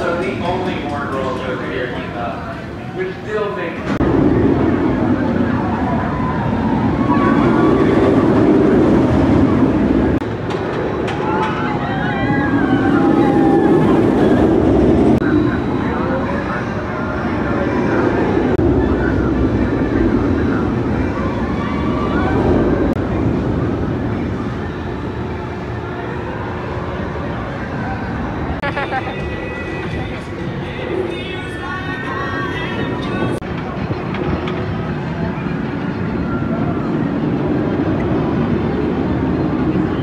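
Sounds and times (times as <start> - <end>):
roller coaster rumbling on track: 0.0 - 40.0.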